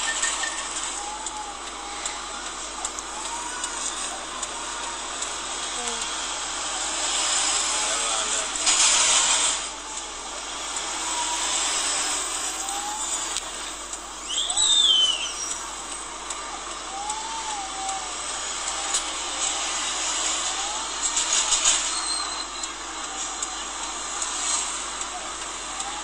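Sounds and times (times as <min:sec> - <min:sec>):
street traffic passing: 0:00.0 - 0:26.0
high-pitched chirping glide: 0:11.0 - 0:16.0.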